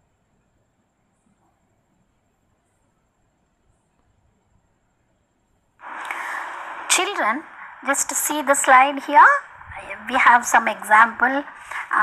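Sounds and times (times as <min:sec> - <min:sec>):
breath on microphone: 0:05.8 - 0:07.8, 0:11.5 - 0:12.0.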